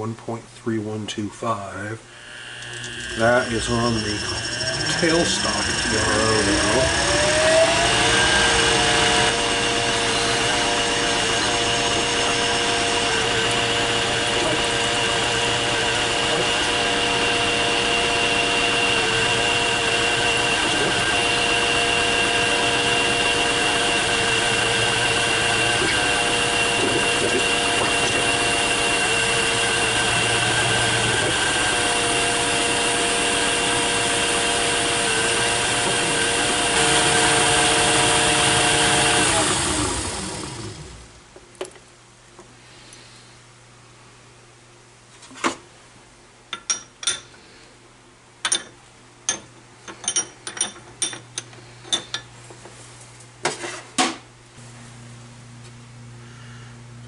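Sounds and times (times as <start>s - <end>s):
drill bit cutting workpiece: 2.2s - 41.0s
lathe motor and gear whine: 2.2s - 41.2s
lathe spinning down: 2.2s - 41.2s.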